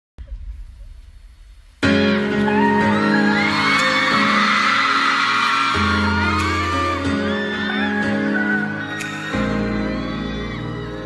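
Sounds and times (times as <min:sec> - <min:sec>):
pop song on sound system: 0:01.8 - 0:11.0
crowd of fans screaming: 0:02.2 - 0:11.0.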